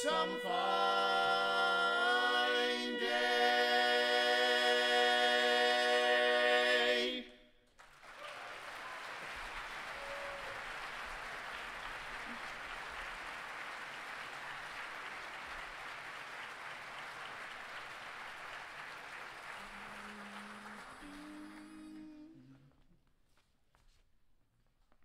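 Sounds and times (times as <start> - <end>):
audience applauding: 7.7 - 22.3.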